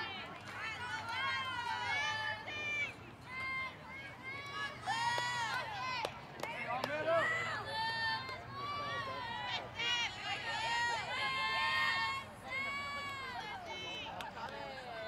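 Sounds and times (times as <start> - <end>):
girls chanting and cheering: 0.0 - 14.2.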